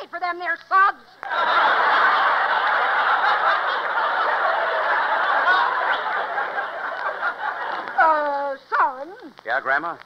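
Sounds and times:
studio audience laughing: 1.2s - 8.2s.

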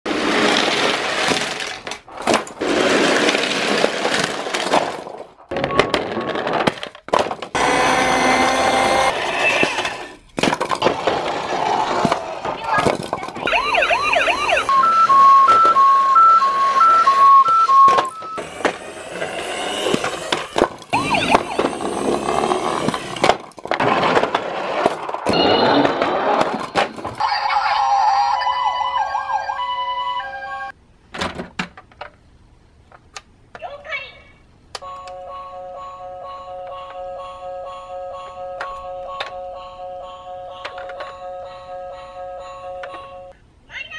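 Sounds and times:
toy cars clattering down wooden ramp: 0.1s - 7.6s, 9.2s - 13.5s, 17.8s - 27.2s
toy electronic sirens: 13.4s - 23.2s, 27.2s - 30.7s, 34.8s - 43.3s.

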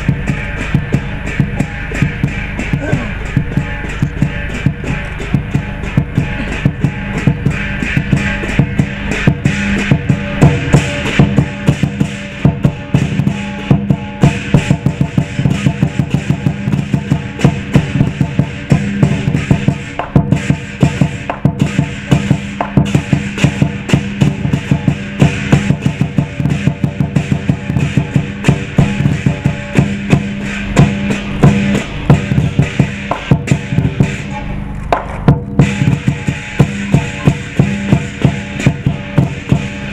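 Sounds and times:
cymbals clashing: 0.0s - 39.9s
large drum beaten fast: 0.0s - 39.9s.

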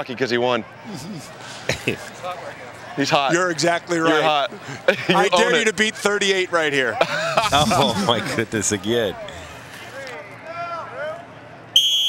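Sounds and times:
faint voices: 0.0s - 11.7s.

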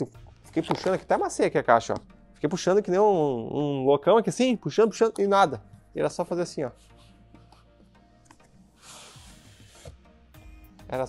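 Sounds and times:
quiet background music: 0.0s - 11.0s
cardboard box sliding out of sleeve: 8.8s - 10.0s.

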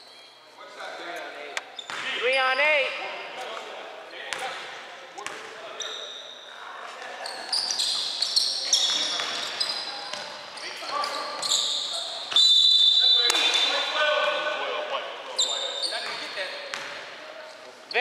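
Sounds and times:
sneakers squeaking on gym floor: 1.6s - 2.2s, 5.3s - 14.0s, 15.3s - 17.1s
loud high sneaker squeal: 5.8s - 6.6s, 7.2s - 14.0s, 15.4s - 16.8s.

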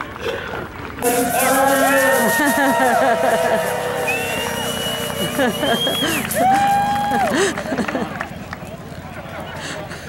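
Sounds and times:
overlapping calls and chatter: 0.0s - 10.0s
long held shout: 1.0s - 7.4s.

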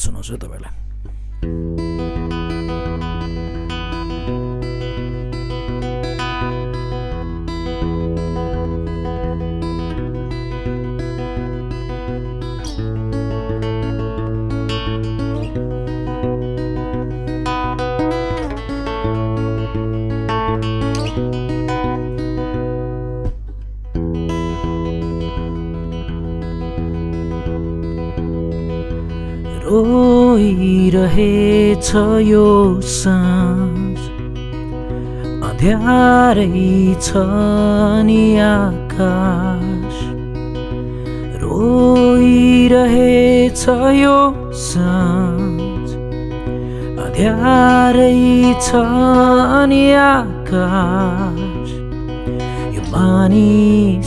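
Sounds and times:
acoustic guitar strumming chords: 0.0s - 54.0s.

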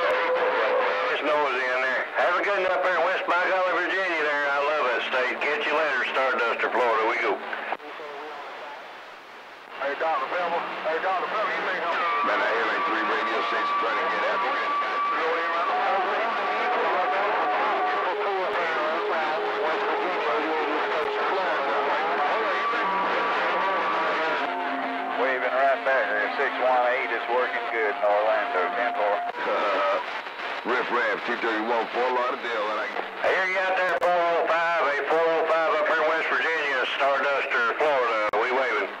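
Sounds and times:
steady radio whistle: 0.0s - 7.1s, 11.1s - 38.9s
garbled radio voices: 0.0s - 9.0s, 9.6s - 39.0s.

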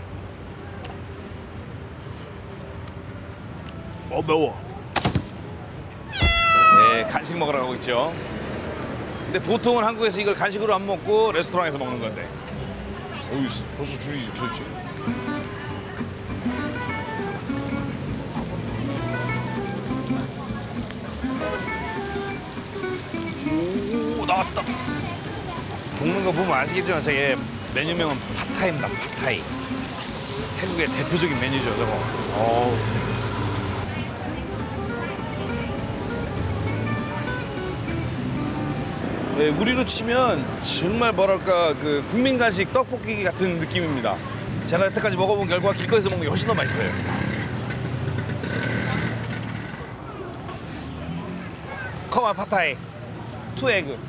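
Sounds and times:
street noise hiss: 0.0s - 54.0s
traffic: 0.0s - 54.0s
faint voices: 4.6s - 8.1s, 12.4s - 40.6s
noodles sizzling in a wok: 28.9s - 33.8s
background music of melodic notes: 34.4s - 39.1s.

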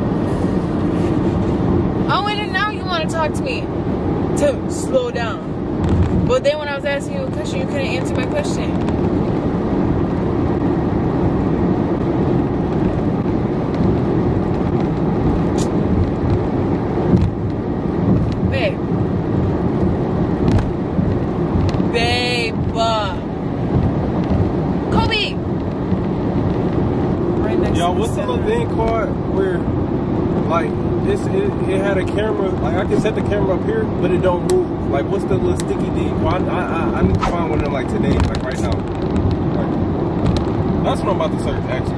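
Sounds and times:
car road and engine rumble: 0.0s - 41.9s
voice: 2.1s - 3.6s, 6.3s - 8.8s, 18.5s - 18.8s, 21.9s - 23.2s, 24.9s - 25.4s, 27.4s - 29.6s, 30.5s - 38.8s, 40.8s - 41.9s.

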